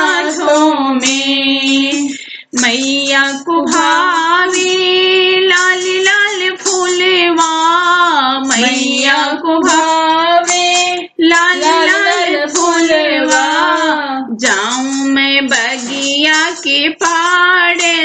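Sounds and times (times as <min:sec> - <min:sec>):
high voice singing devotional song: 0:00.0 - 0:18.0
singer breathing: 0:02.1 - 0:02.6.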